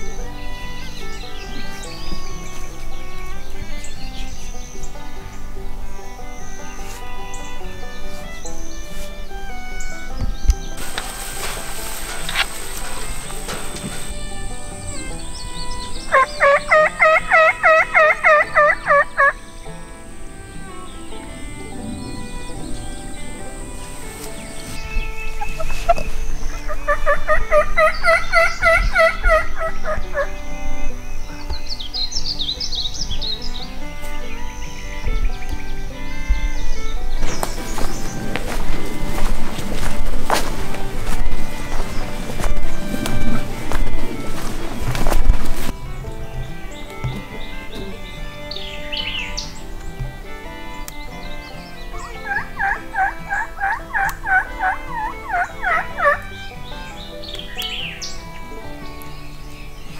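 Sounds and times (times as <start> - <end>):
turkey gobbling: 10.8 - 19.4, 21.0 - 30.3, 51.9 - 56.4.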